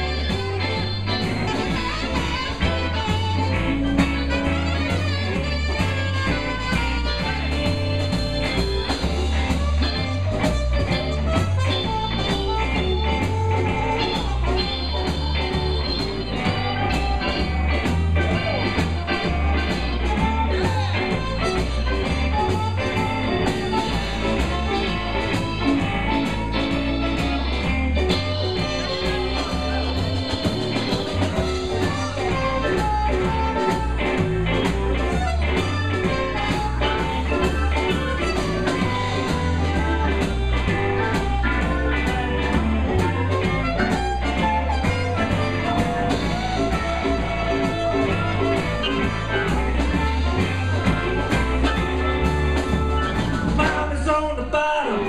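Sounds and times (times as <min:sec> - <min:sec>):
live jump blues band: 0:00.0 - 0:55.0
saxophone and trumpet horn lines: 0:00.0 - 0:55.0.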